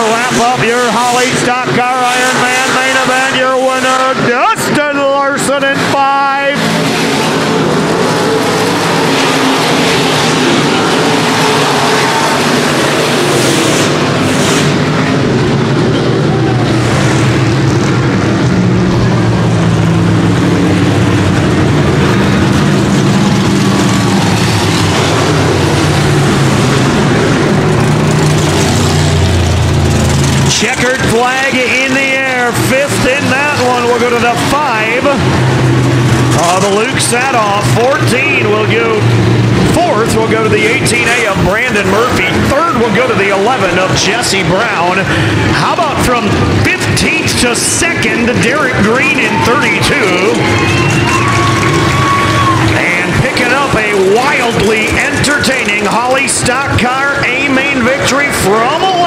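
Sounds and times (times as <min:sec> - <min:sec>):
race car engines at speed: 0:00.0 - 0:59.0.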